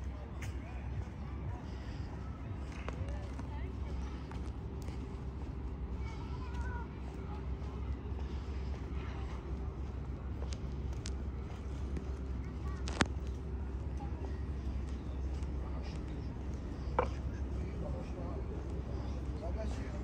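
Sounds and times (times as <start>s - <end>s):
distant traffic hum: 0.0s - 20.0s
faint voices: 0.0s - 20.0s.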